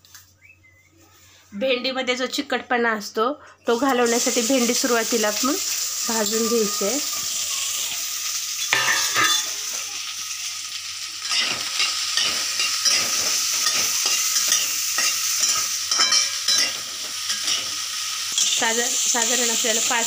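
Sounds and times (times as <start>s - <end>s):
okra sizzling in a wok: 3.6s - 20.0s
spatula scraping and stirring: 11.3s - 18.6s.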